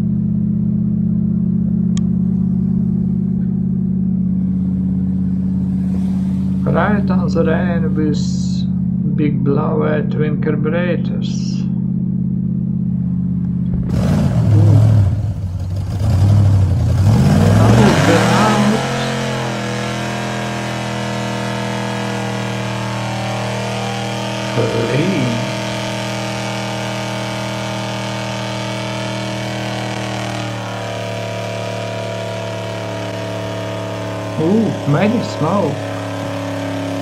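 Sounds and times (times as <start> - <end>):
car engine revving: 0.0 - 37.0.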